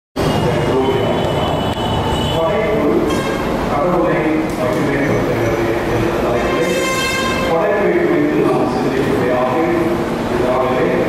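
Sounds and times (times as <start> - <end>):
man speaking into microphone: 0.2 - 11.0.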